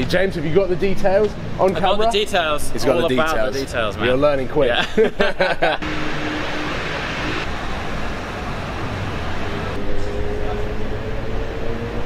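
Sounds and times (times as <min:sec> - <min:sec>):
road traffic rumble: 0:00.0 - 0:12.0
faint rising tone: 0:05.8 - 0:12.0.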